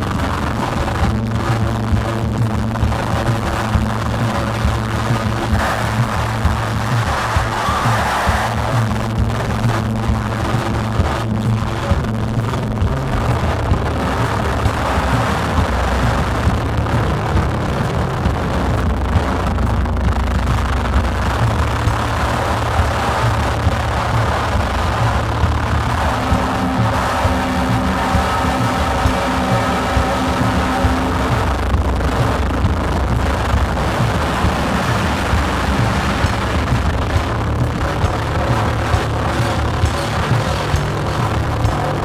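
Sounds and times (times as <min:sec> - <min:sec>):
live drum kit: 0:00.0 - 0:42.0
low electronic synthesizer drone: 0:00.0 - 0:42.0
steady held tones: 0:00.0 - 0:42.0.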